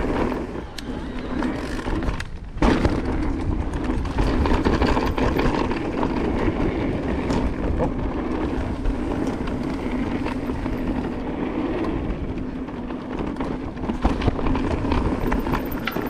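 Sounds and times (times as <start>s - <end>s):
bike clicks and rattles: 0.0s - 16.0s
tyre noise on dirt: 0.0s - 16.0s.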